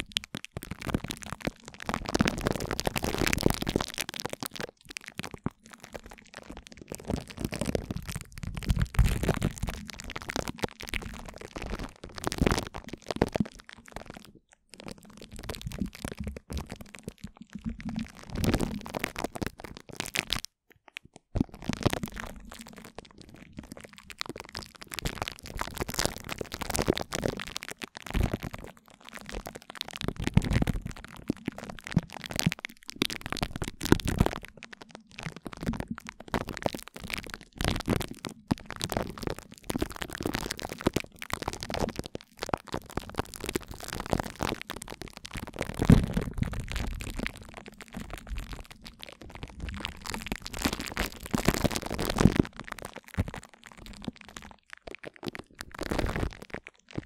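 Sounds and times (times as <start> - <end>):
sticky crackles and pops: 0.0 - 57.0.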